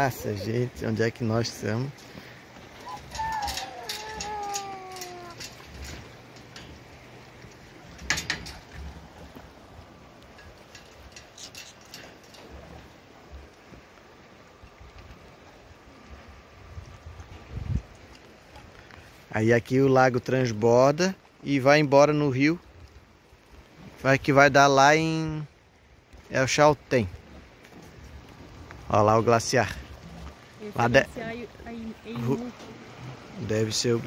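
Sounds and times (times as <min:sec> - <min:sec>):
footsteps on wooden dock: 0:27.1 - 0:31.6.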